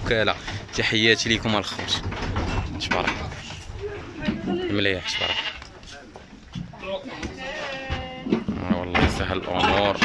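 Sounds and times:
sheep bleating: 4.9 - 5.6, 7.4 - 8.4.

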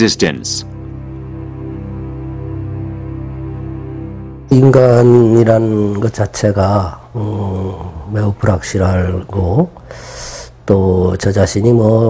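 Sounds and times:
man speaking loudly: 0.0 - 0.7
soft background music: 0.0 - 12.0.

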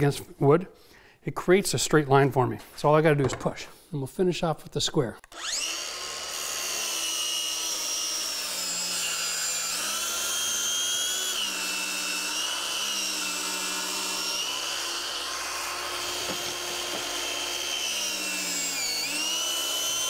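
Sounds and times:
circular saw cutting wood: 5.3 - 20.0.

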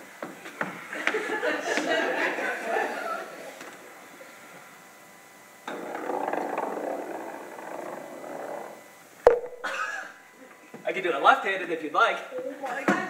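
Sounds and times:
audience laughing and exclaiming: 1.0 - 3.6.

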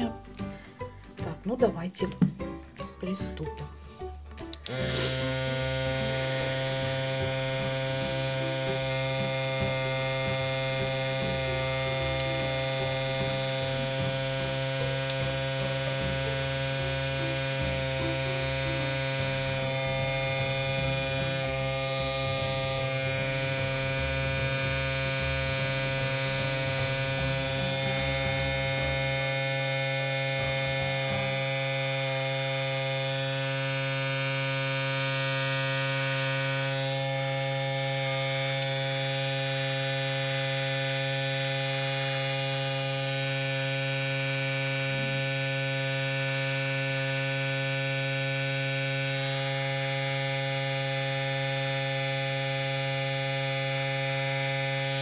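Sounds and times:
airbrush compressor humming: 3.1 - 55.0
airbrush spraying hiss: 4.6 - 31.8, 35.0 - 43.4, 47.8 - 55.0.

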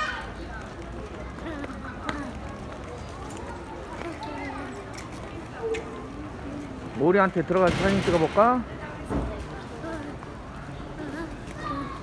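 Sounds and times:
footsteps on stone paving: 0.0 - 6.2
faint voices: 0.0 - 12.0.

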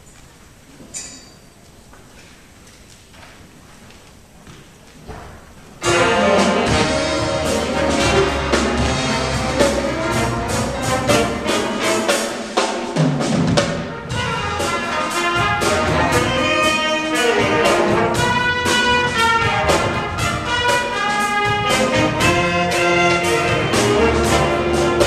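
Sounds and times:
drum kit beat: 5.8 - 25.0
trumpets and saxophones: 5.8 - 25.0.

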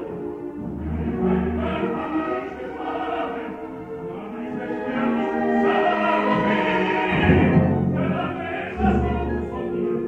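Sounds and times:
opera singing voices: 0.0 - 10.0
orchestra playing: 0.0 - 10.0.

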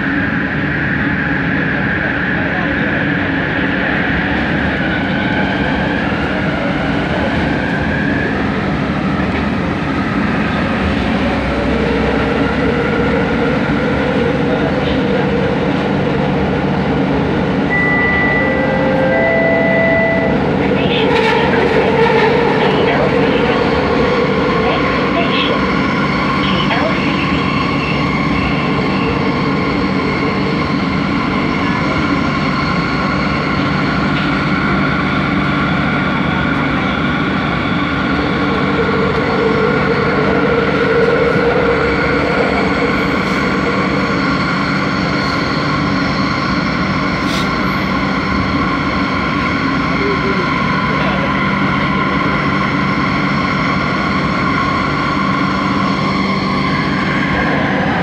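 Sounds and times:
metro train running noise: 0.0 - 58.0.

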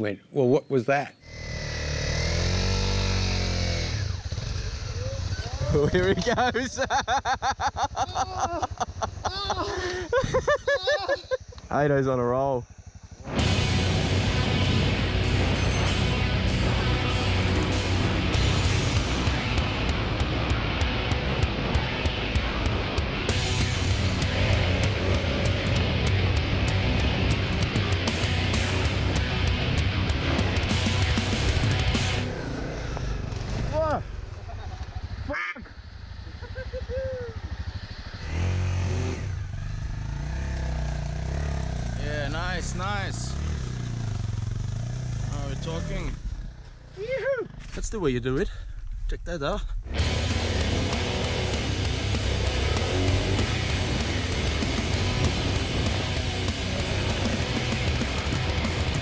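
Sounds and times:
dirt bike engine revving: 1.2 - 7.2, 12.7 - 47.8, 49.9 - 59.0
rock music with guitar: 13.3 - 32.5, 49.9 - 59.0.

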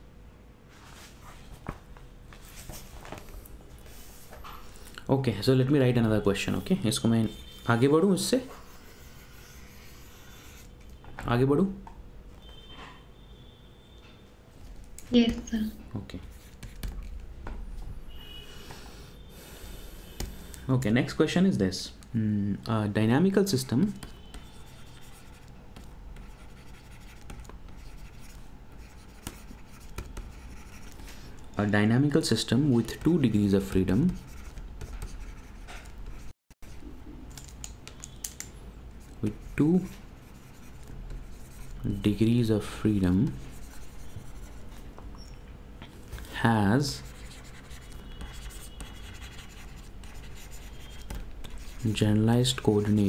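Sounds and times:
low steady background noise: 0.0 - 53.0
stylus writing on tablet screen: 6.0 - 10.8, 23.4 - 31.2, 32.3 - 36.2, 39.0 - 44.8, 46.5 - 53.0.

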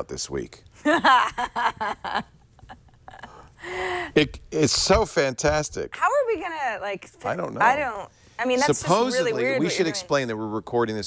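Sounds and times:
person laughing breathily: 1.9 - 4.2
held vocal gasp: 3.3 - 4.2.

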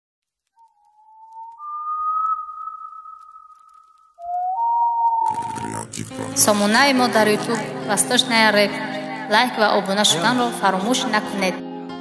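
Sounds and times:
low electronic tone: 0.6 - 6.6
high electronic tone: 0.7 - 7.8.

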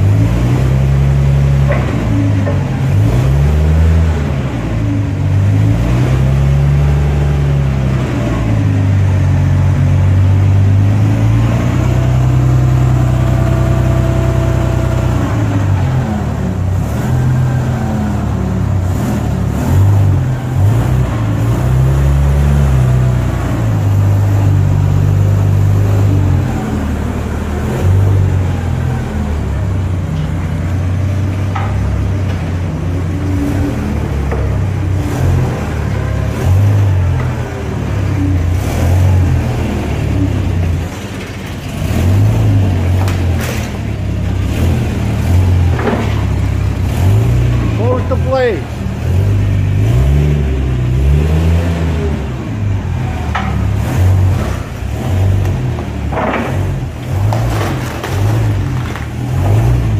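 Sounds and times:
forklift engine revving: 0.0 - 59.9.

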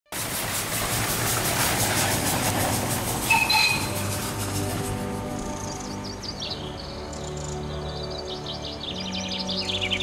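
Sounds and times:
steam engine chuffing: 0.1 - 6.2
short whistle-like tone: 3.3 - 4.0.

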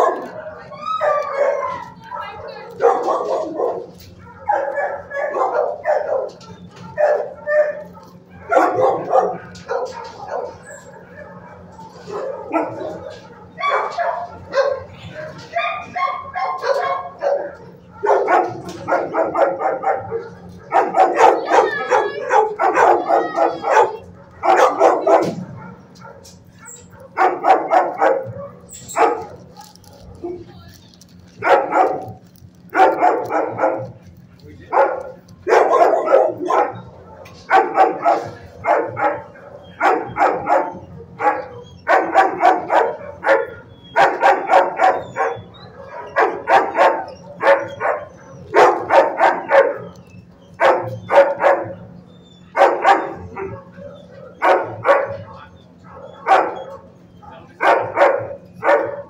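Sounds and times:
dogs barking and yipping: 0.0 - 59.0.

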